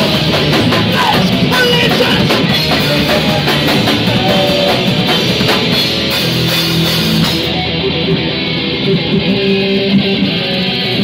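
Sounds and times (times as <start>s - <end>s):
electric guitar: 0.0s - 11.0s
punk rock band playing: 0.0s - 11.0s.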